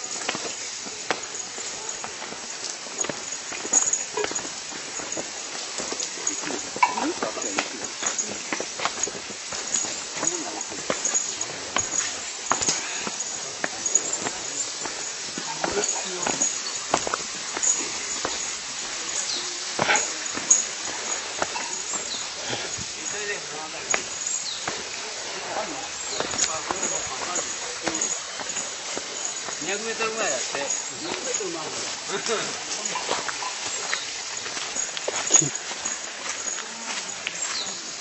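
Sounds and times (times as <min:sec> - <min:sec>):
footsteps on path: 0:00.0 - 0:38.0
indistinct chatter of walkers: 0:00.0 - 0:38.0.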